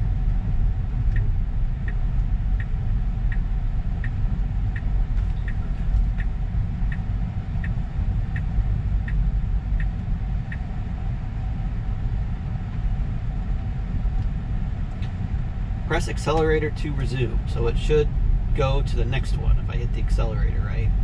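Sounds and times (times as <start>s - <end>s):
turn signal ticking: 0.0s - 21.0s
tyres rumbling on road: 0.0s - 21.0s.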